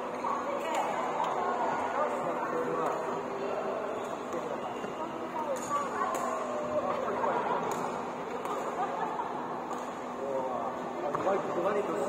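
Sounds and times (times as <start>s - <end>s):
players' voices chatting: 0.0s - 12.0s.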